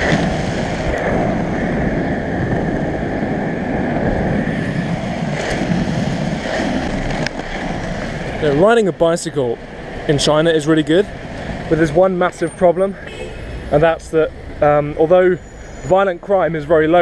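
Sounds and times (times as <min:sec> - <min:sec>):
skateboard wheels rolling on asphalt: 0:00.0 - 0:12.0.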